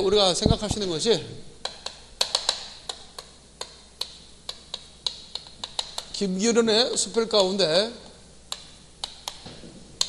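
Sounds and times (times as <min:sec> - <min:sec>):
chalk tapping on chalkboard: 0:01.6 - 0:06.2, 0:06.8 - 0:09.8.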